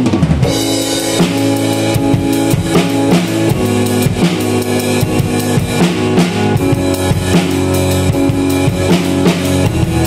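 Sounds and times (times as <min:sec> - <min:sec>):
drum kit steady beat: 0:00.0 - 0:10.0
held keyboard chords: 0:00.0 - 0:10.0.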